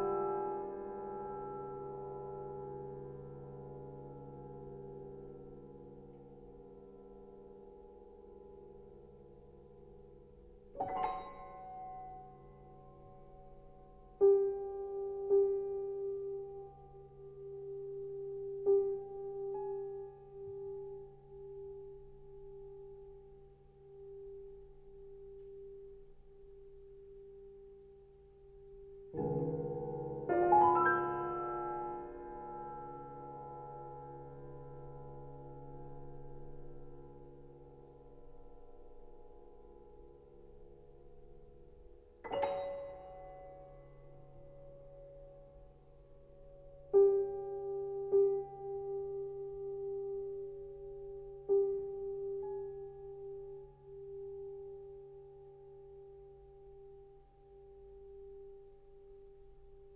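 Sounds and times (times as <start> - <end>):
piano notes ringing: 10.8 - 16.5, 42.2 - 45.5.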